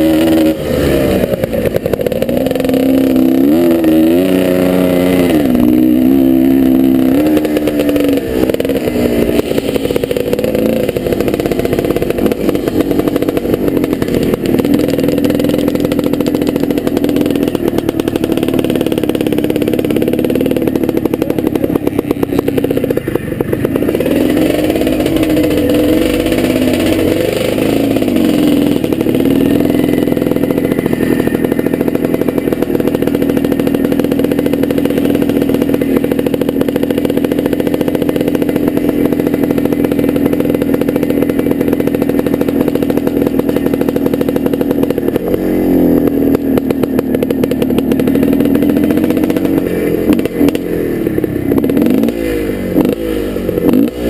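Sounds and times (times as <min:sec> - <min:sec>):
dirt bike engine revving: 0:00.0 - 0:54.0.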